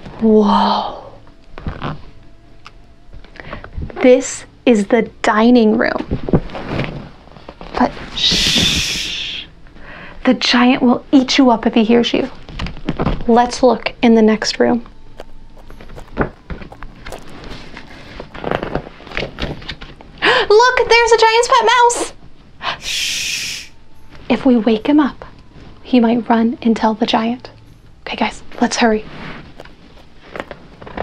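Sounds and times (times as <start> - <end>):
quick soft footsteps: 15.2 - 19.4, 29.5 - 31.0.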